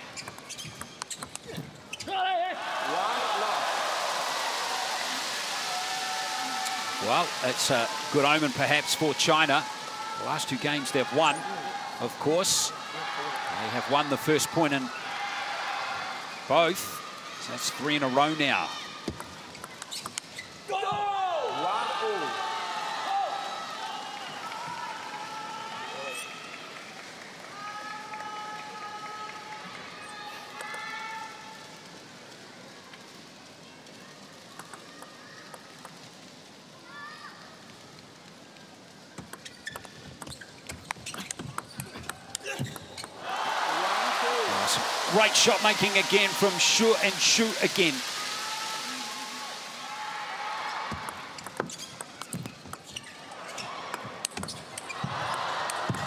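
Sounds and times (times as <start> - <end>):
crowd cheering and applause: 2.4 - 19.9, 20.7 - 31.0, 43.1 - 52.3, 53.3 - 56.0
crowd shouting and chanting: 5.8 - 19.1
table tennis ball clicks: 51.0 - 52.9.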